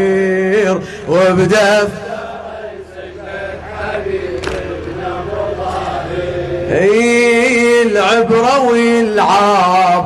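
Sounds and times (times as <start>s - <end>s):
man reciting loudly: 0.0s - 10.0s
men chanting together: 0.4s - 10.0s.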